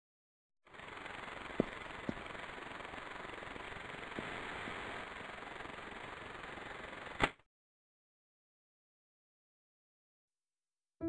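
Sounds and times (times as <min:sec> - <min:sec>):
whirring hiss: 0:00.7 - 0:07.3.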